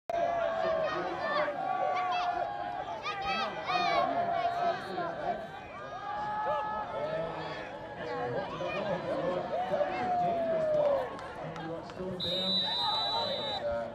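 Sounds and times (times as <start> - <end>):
crowd shouting and cheering: 0.1 - 13.9.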